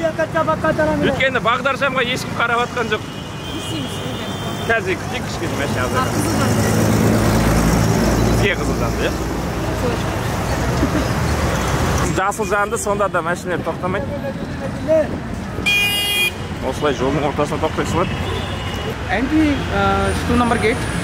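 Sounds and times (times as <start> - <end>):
steady traffic hum: 0.0 - 21.0
vehicle passing close: 5.1 - 12.2.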